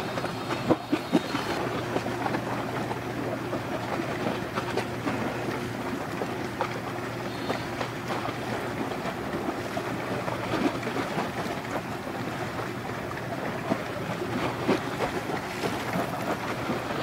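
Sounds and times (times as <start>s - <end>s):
ship engine drone: 0.0s - 10.7s
bow wave rushing and splashing: 0.0s - 17.0s.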